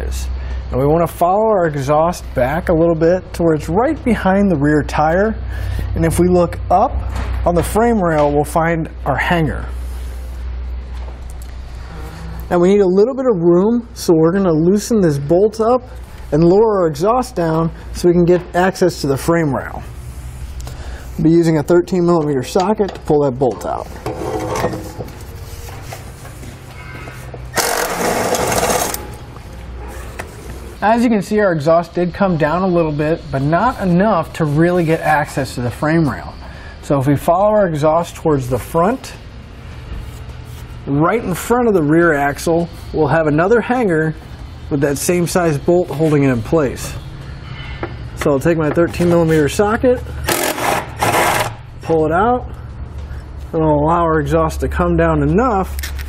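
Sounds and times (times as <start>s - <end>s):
ratchet turning: 27.5s - 29.1s, 50.2s - 51.6s
impact driver running: 27.6s - 29.1s, 50.2s - 51.6s.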